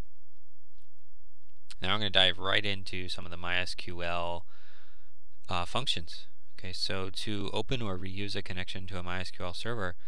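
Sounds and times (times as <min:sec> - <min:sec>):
low steady hum: 0:00.0 - 0:10.0
man's voice: 0:01.7 - 0:04.4, 0:05.5 - 0:10.0.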